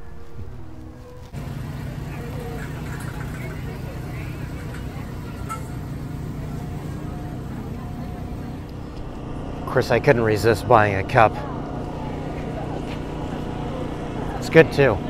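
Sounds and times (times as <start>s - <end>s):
steady low hum: 1.3s - 15.0s
faint distant voices: 1.4s - 15.0s.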